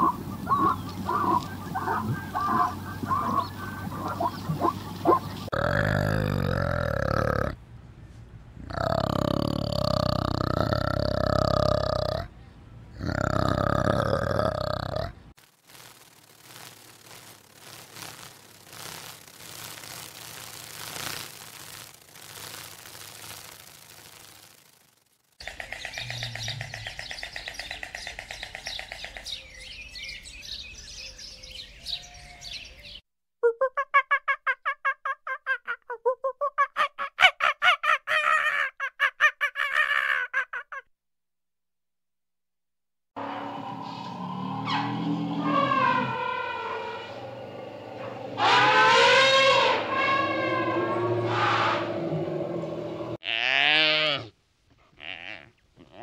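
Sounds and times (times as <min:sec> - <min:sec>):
animal calls: 0:00.0 - 0:07.6, 0:25.4 - 0:29.5, 0:43.9 - 0:56.0.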